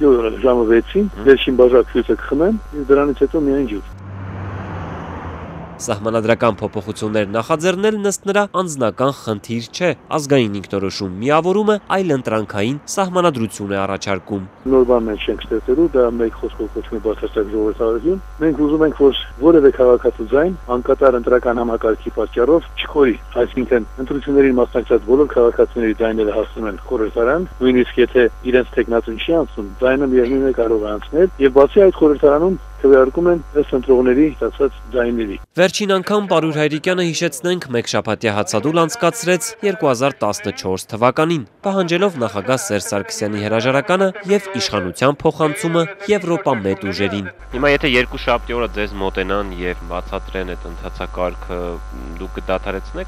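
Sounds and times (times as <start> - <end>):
low mains hum: 0.0 - 3.9, 14.3 - 35.5, 46.8 - 53.0
man's voice over telephone: 0.0 - 3.9, 5.8 - 53.0
distant traffic: 0.0 - 35.4
street ambience: 0.0 - 53.0.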